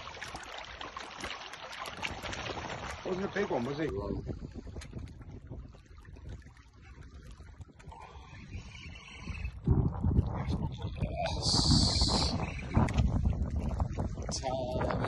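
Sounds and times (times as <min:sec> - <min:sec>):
wind on microphone: 0:02.0 - 0:15.0.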